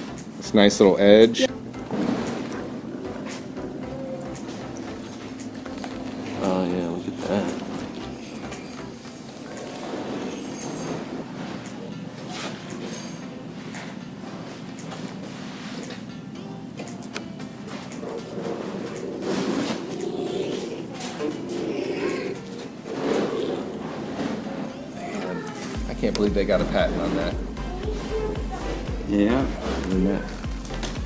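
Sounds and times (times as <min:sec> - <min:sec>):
background music with low tone: 0:00.0 - 0:31.0
masking tape peeling crackle: 0:29.7 - 0:31.0.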